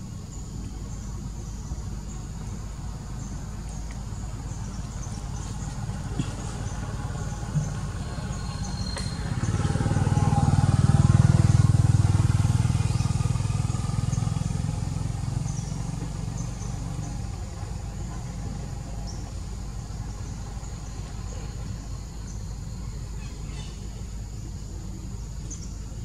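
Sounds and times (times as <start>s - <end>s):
vehicle engine passing by: 0.2s - 26.0s.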